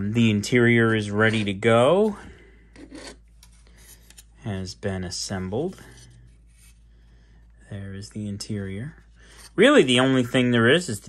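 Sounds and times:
plastic part rubbing and scraping: 0:02.8 - 0:04.2.

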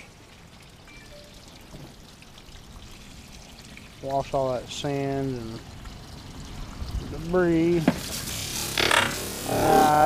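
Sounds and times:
water pouring and trickling: 0:00.0 - 0:10.0.

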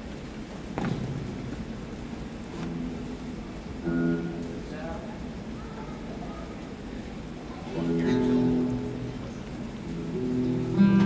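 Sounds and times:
steady background hiss: 0:00.0 - 0:11.0
acoustic guitar chords strummed: 0:02.6 - 0:04.9, 0:07.8 - 0:11.0.

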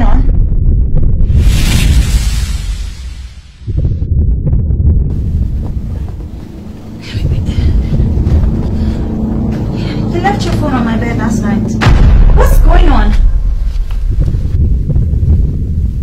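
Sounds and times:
deep rumbling drone: 0:00.0 - 0:16.0.

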